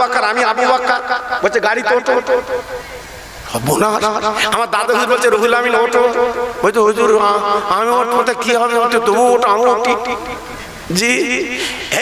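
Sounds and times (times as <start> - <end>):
man chanting a sermon: 0.0 - 2.8, 3.5 - 12.0.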